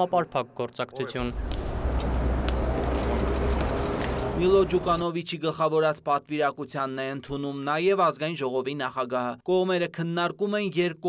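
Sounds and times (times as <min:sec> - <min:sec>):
steady low rumble: 0:01.2 - 0:05.0.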